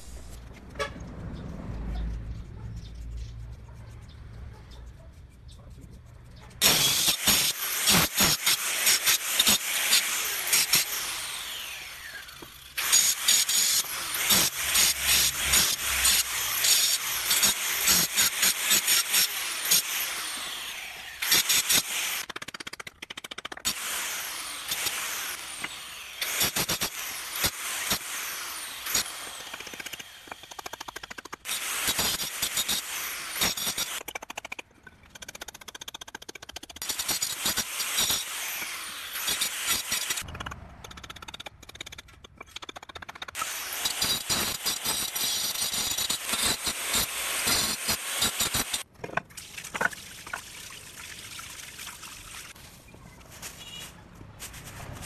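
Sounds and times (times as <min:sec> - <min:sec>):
hammer and chisel chipping brick: 0:06.6 - 0:10.9, 0:21.3 - 0:23.8, 0:28.9 - 0:50.4
electric cutter sawing brick: 0:06.6 - 0:34.6, 0:35.2 - 0:42.0, 0:42.8 - 0:48.9.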